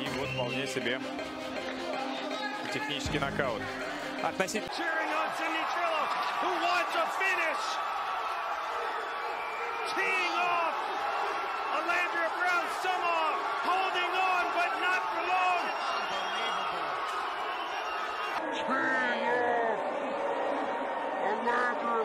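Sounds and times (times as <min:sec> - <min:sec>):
people shouting: 0:04.7 - 0:21.4.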